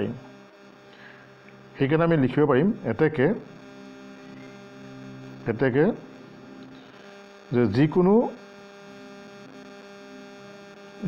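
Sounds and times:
electrical mains hum: 0.0s - 11.0s
man speaking: 5.5s - 6.0s.

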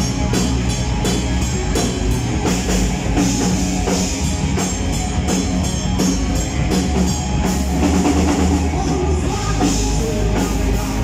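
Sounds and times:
drum kit steady beat: 0.0s - 11.0s
live rock band playing: 0.0s - 11.0s.

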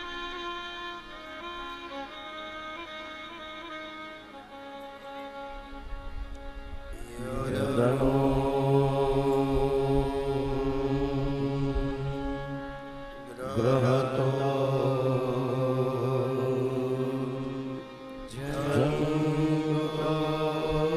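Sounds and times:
instrumental drone: 0.0s - 20.9s
man chanting deep note: 6.9s - 20.9s.

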